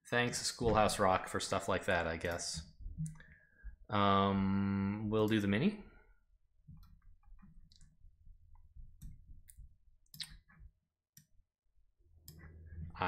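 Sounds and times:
computer mouse clicks: 9.0 - 10.6.

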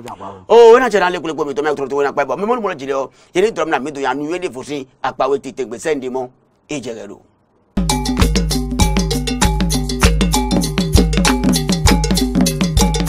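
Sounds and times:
cowbell-like percussion: 7.8 - 13.0
deep bass line: 7.8 - 13.0.

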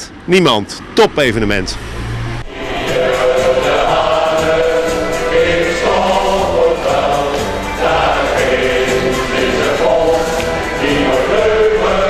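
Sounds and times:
choir singing held notes: 1.3 - 12.0.

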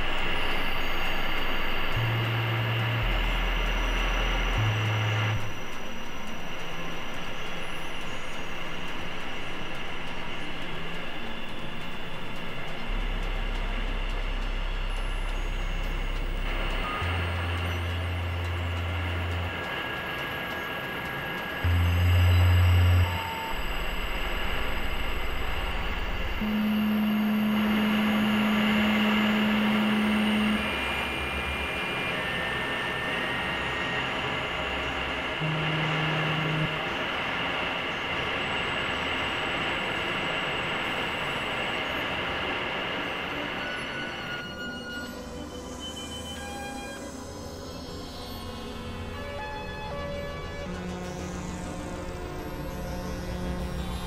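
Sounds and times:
hissy synthesizer drone: 0.0 - 54.0
low sustained synth tones: 0.0 - 54.0.

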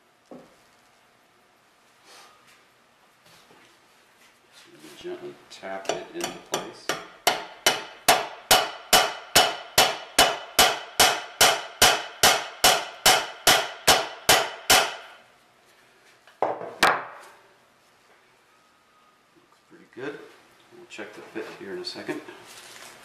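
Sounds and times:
hammer tapping steel rod: 5.8 - 15.1.

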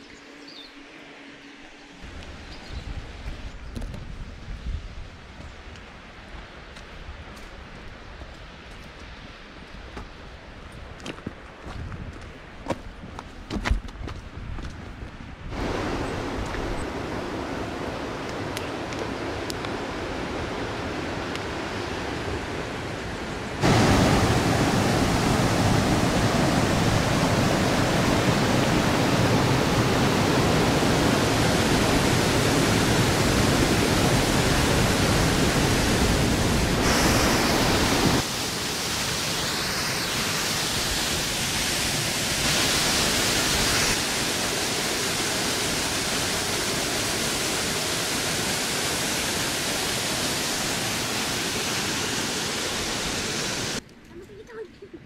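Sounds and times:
waterfall rushing: 15.5 - 53.8.

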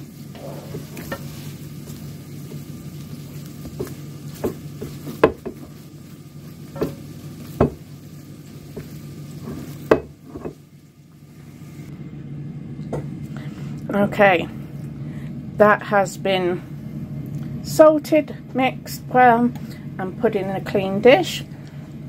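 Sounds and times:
spatula knocking on bowl: 7.6 - 7.8.

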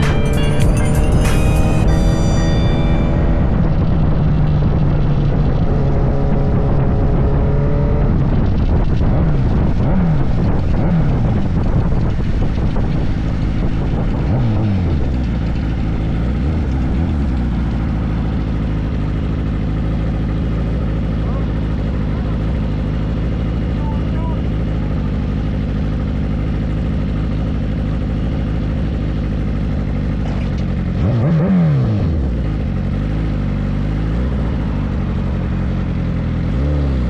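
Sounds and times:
motorcycle engine: 0.0 - 37.0.

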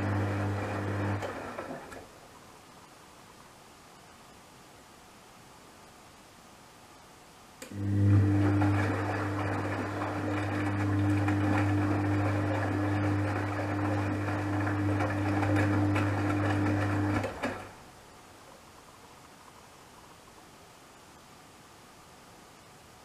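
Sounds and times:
washing machine drum tumbling: 8.1 - 17.8.

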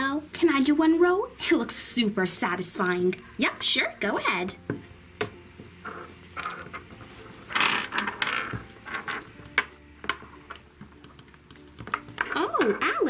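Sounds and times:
plastic counters clacking on wood: 7.5 - 11.2.

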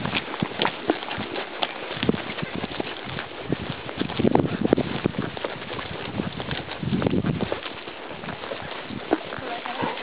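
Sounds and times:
horse hooves on stony trail: 0.0 - 10.0.

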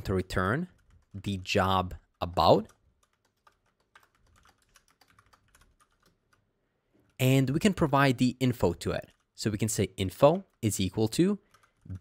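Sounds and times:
faint keyboard typing: 0.0 - 7.9, 8.6 - 12.0.

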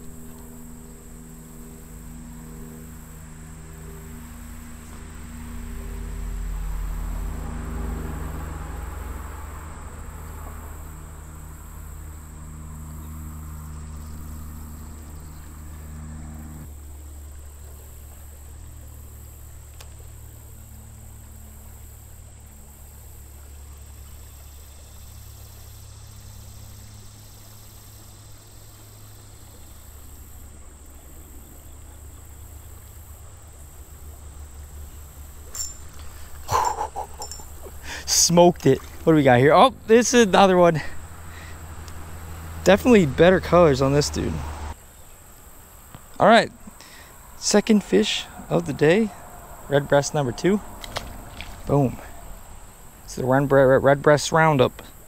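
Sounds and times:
insects buzzing: 0.0 - 55.0
low hum and rumble: 0.0 - 55.0.

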